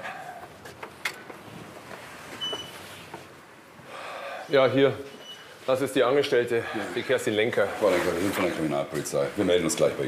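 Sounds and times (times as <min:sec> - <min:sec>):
street background noise: 0:00.0 - 0:04.5.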